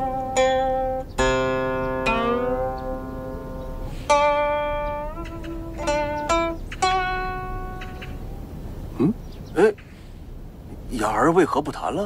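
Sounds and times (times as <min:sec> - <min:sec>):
zither plucked notes: 0:00.0 - 0:08.6.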